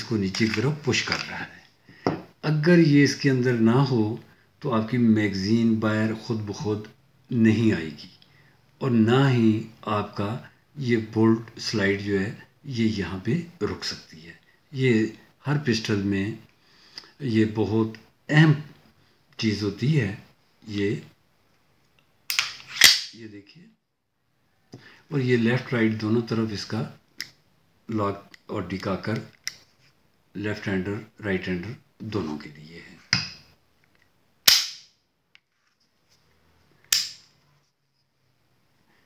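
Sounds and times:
pistol metallic clicks: 0:22.3 - 0:23.2, 0:34.4 - 0:34.9, 0:36.9 - 0:37.3.

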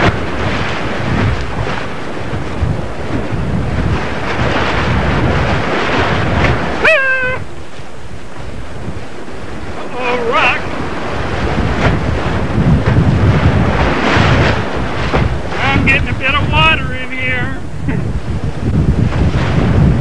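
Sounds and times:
whitewater rushing: 0:00.0 - 0:18.1
wind buffeting microphone: 0:00.0 - 0:20.0
person shouting: 0:06.8 - 0:07.5.

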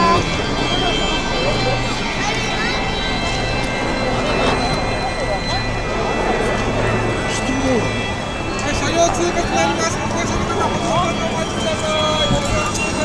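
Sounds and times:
crowd chatter: 0:00.0 - 0:13.0
faint high steady tones: 0:00.0 - 0:13.0.

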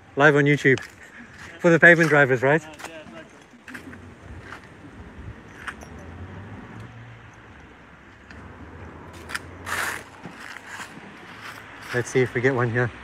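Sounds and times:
road traffic hum: 0:00.0 - 0:13.0.

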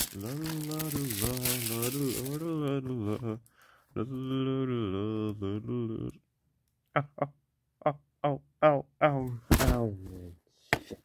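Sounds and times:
man singing wordless tune: 0:00.0 - 0:06.2.

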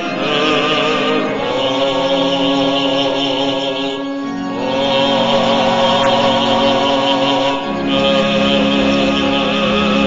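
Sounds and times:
hymn held chord: 0:00.0 - 0:10.0.

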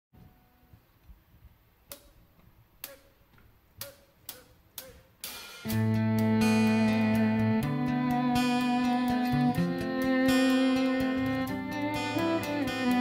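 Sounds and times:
sharp count-in taps: 0:01.9 - 0:02.2, 0:02.8 - 0:06.4
band playing sustained chord: 0:05.7 - 0:13.0.

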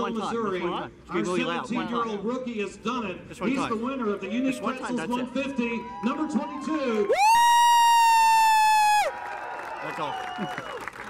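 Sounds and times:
man whooping: 0:07.1 - 0:09.1.

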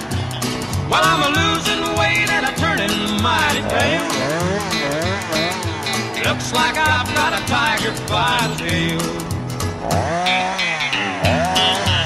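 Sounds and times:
country song with guitar: 0:00.0 - 0:12.0
chainsaw cutting log: 0:03.6 - 0:06.2, 0:09.6 - 0:12.0.

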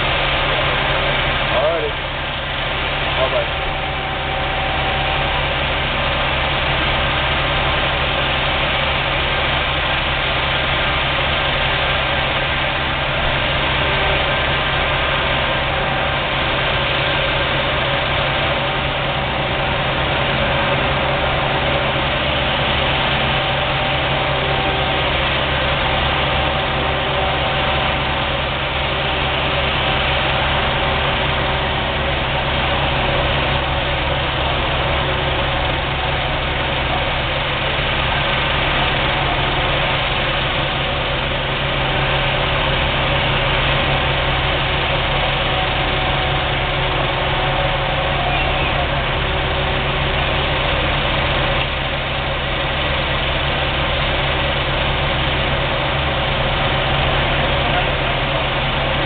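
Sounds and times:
diesel engines idling: 0:00.0 - 0:59.0.

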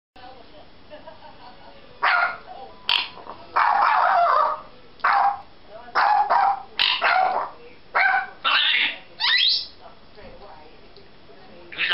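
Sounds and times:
parrot mimicking dog barks: 0:02.0 - 0:09.7.

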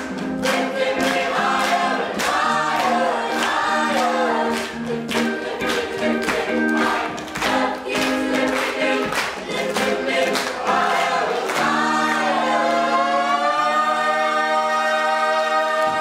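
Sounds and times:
choir singing up-tempo song: 0:00.0 - 0:16.0.

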